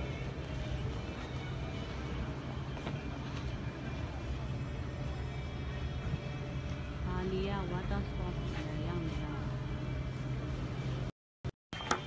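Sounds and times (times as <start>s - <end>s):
steady low hum: 0.0s - 11.1s.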